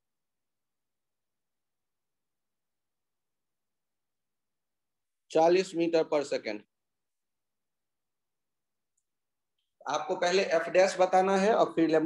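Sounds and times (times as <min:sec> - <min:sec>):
man speaking: 0:09.8 - 0:12.0.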